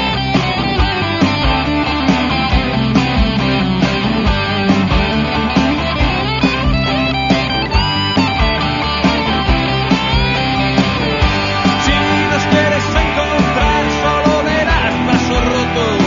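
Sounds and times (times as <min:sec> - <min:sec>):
rock music with electric guitar: 0:00.0 - 0:16.0.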